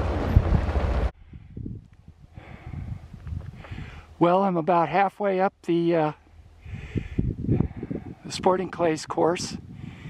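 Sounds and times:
wind buffeting microphone: 0:00.0 - 0:04.1, 0:06.6 - 0:10.0.

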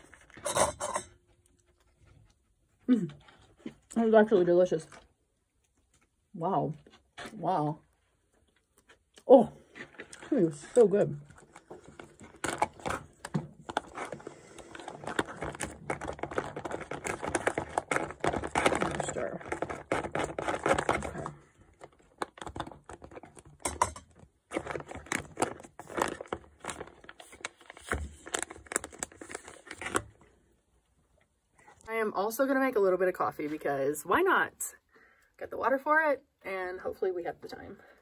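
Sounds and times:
foil pouch crinkling: 0:09.7 - 0:30.2.

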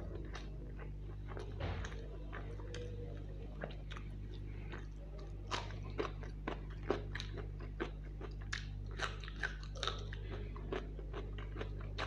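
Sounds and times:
chewing and biting food: 0:00.0 - 0:12.0
low hum: 0:00.0 - 0:12.0.

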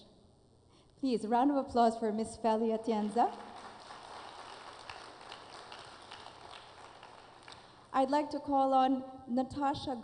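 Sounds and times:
audience applauding: 0:03.2 - 0:07.9.

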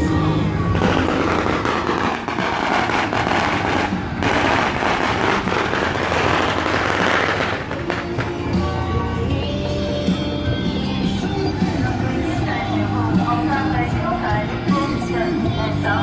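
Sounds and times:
firecrackers crackling: 0:00.0 - 0:09.2
procession music: 0:00.0 - 0:16.0.

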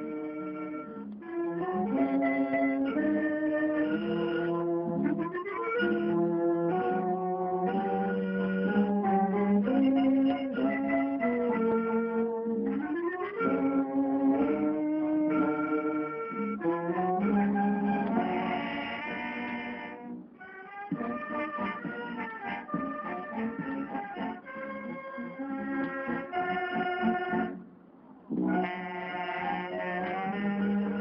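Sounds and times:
wind band playing a waltz: 0:00.0 - 0:27.7, 0:28.3 - 0:31.0.

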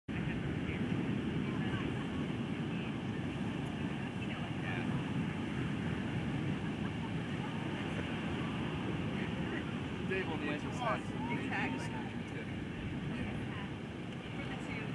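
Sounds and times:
faint voices: 0:00.1 - 0:14.9
wind rumble on microphone: 0:00.1 - 0:14.9.

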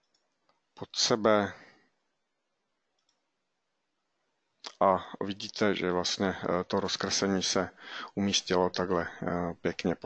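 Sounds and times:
computer mouse click: 0:00.0 - 0:00.6, 0:03.0 - 0:03.3.

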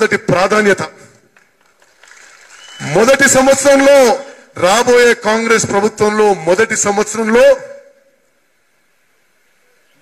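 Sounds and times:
man speaking over a microphone: 0:00.0 - 0:01.2, 0:02.8 - 0:08.1
faint crowd noise: 0:07.3 - 0:10.0.

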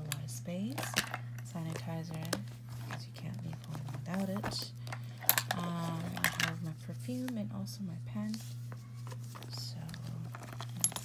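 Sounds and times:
small items tapping and clicking: 0:00.1 - 0:06.6, 0:09.4 - 0:11.0.

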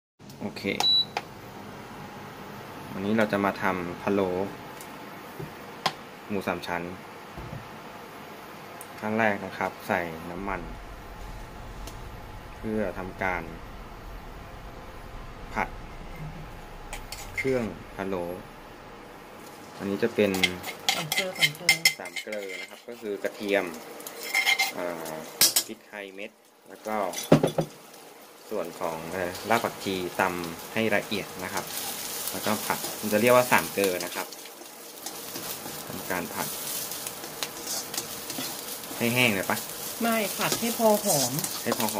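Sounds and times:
utensil scraping wok: 0:10.3 - 0:25.6, 0:29.1 - 0:41.9
utensil clinking on wok: 0:20.3 - 0:22.8.

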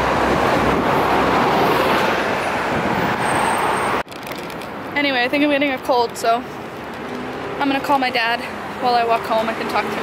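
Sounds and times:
wind buffeting microphone: 0:00.0 - 0:03.4
city street traffic: 0:00.0 - 0:10.0.

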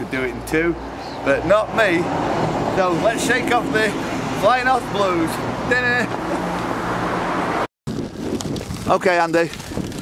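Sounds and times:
road traffic rush: 0:00.0 - 0:08.4.

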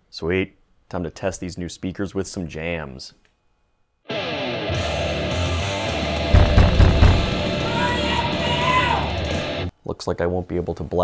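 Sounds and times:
heavy rock music: 0:04.2 - 0:09.7
heavy low thumps: 0:06.4 - 0:07.9.

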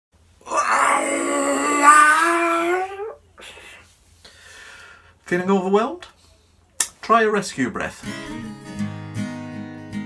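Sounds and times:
man wailing: 0:00.5 - 0:03.2
breathy exhale: 0:03.5 - 0:05.2.

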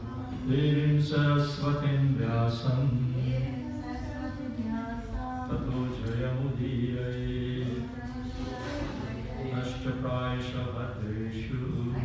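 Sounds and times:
man chanting in sung tone: 0:00.5 - 0:03.3, 0:09.4 - 0:12.0.

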